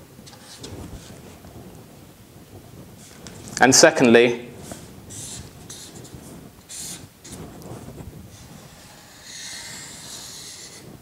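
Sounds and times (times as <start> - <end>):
marker scratching on paper: 4.6 - 7.4, 8.3 - 10.9.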